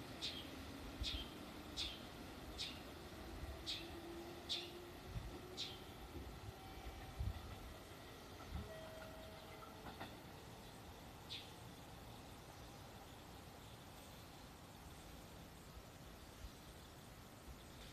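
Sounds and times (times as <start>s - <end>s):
distant electric train rumbling: 0.0s - 17.9s.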